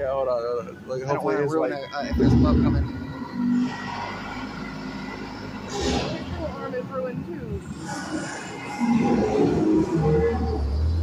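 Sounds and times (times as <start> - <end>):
ambient soundtrack drone: 0.0 - 11.0.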